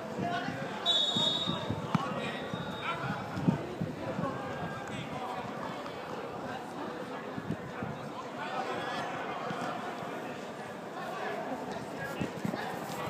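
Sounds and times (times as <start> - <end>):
referee's whistle blast: 0.8 - 1.7.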